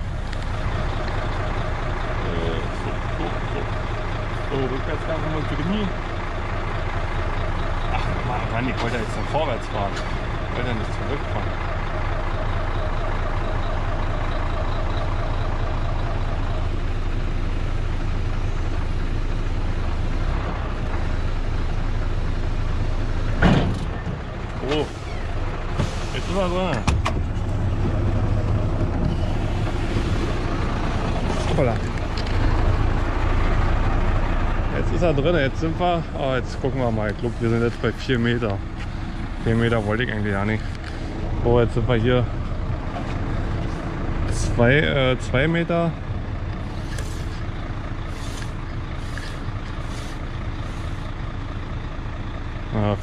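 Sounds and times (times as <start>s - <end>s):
truck diesel engine running: 0.0s - 53.0s.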